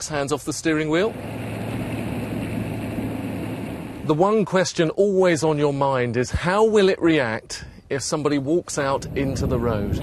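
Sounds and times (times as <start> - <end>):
car road noise hiss: 1.1 - 4.2
low hum: 1.1 - 4.2.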